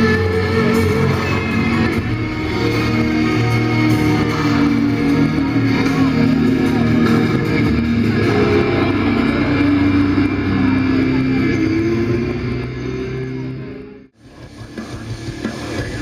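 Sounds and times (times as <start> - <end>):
live heavy metal band: 0.0 - 16.0.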